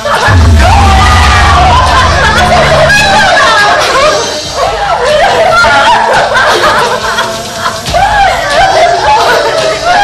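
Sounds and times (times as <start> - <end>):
women wailing and sobbing: 0.0 - 10.0.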